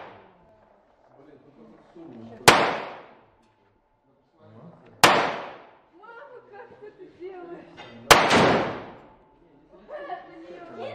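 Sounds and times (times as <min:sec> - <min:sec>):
rifle shots with echo: 0:00.0 - 0:00.3, 0:02.4 - 0:03.2, 0:05.0 - 0:05.8, 0:08.1 - 0:09.1.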